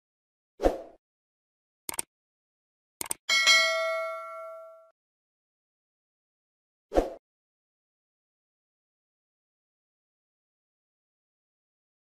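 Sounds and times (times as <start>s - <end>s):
mouse-click sound effects: 1.9s - 2.1s, 3.0s - 3.2s
notification bell ding: 3.3s - 4.9s.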